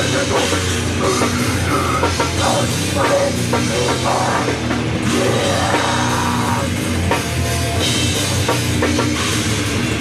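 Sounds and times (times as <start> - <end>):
distorted electric guitars: 0.0 - 10.0
drum kit with cymbals: 0.0 - 10.0.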